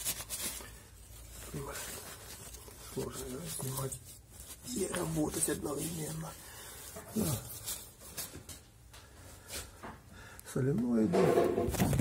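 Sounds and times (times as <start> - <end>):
paper napkin rustling: 0.0 - 8.7.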